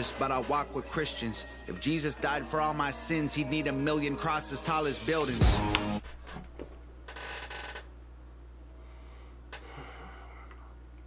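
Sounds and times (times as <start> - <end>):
steady low hum: 0.0 - 11.0
man breathing out: 8.8 - 10.8.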